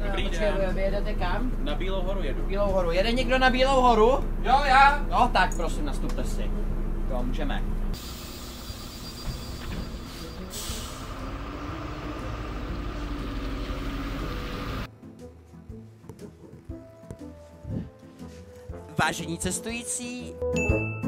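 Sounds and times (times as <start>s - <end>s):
bus diesel engine: 0.0s - 14.9s
air brake hiss: 8.0s - 9.0s, 9.6s - 11.3s
background music: 9.8s - 21.0s.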